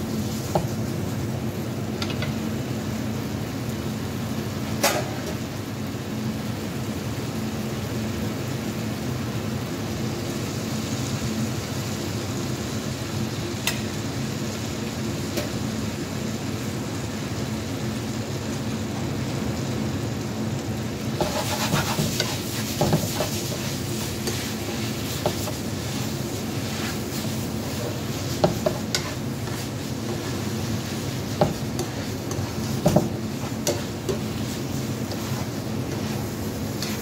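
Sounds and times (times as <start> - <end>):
low kitchen hum: 0.0 - 37.0
noodles sizzling in a frying pan: 0.0 - 37.0
metal tongs scraping a pan: 21.2 - 26.0, 26.6 - 37.0.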